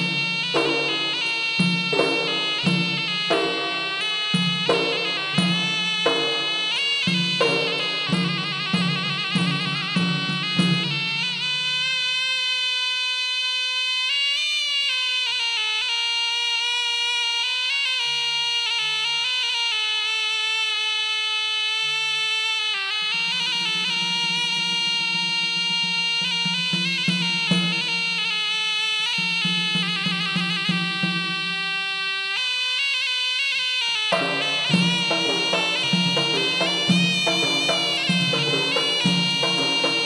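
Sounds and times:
frame drum beats: 0:00.0 - 0:11.5, 0:23.2 - 0:28.3, 0:34.1 - 0:40.0
reedy wind instrument melody: 0:00.0 - 0:40.0.

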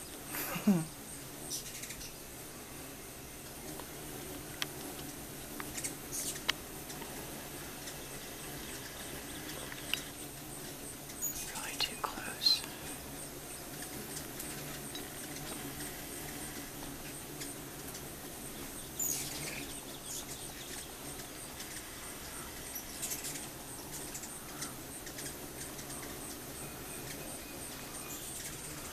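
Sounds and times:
hummingbird wings humming: 0:00.0 - 0:28.9.

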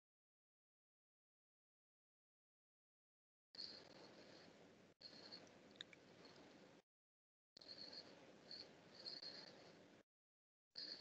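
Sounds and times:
faint room hiss: 0:07.6 - 0:10.0.

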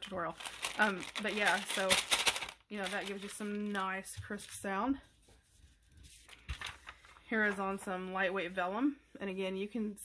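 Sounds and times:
paper sheets rustling: 0:00.0 - 0:08.0.

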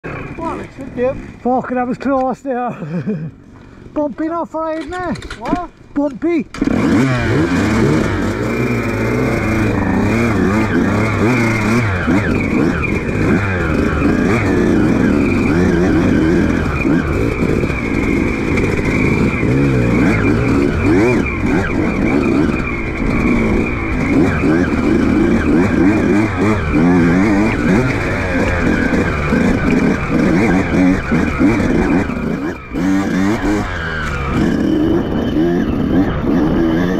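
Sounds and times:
dirt bike engine revving: 0:06.5 - 0:36.9.

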